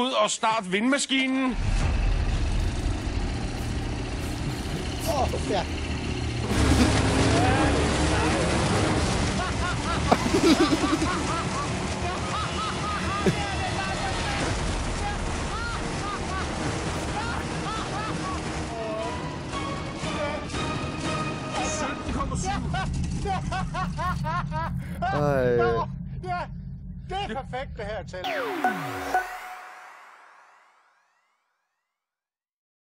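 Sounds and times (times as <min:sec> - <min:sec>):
wind machine fan running: 0:02.5 - 0:27.6.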